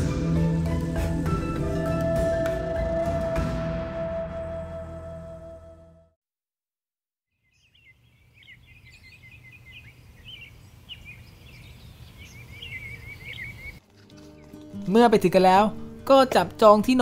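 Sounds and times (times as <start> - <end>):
music: 0.0 - 6.2, 13.8 - 17.0
small birds twittering: 7.4 - 13.8.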